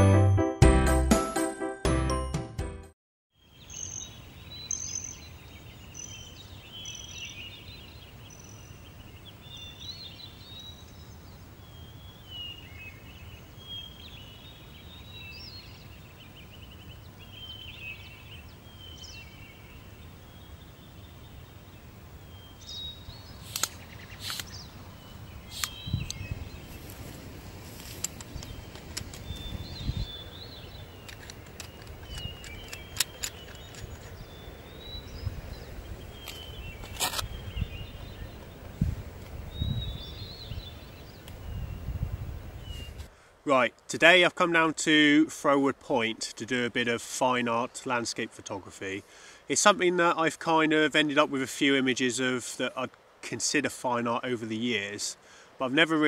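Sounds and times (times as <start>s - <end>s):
birds singing: 3.4s - 43.2s
sharp clicks and knocks: 31.0s - 34.2s.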